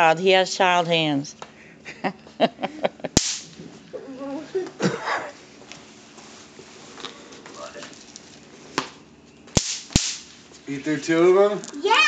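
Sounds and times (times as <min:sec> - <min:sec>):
bang snap cracking on concrete: 0:03.2 - 0:03.6, 0:09.5 - 0:10.4.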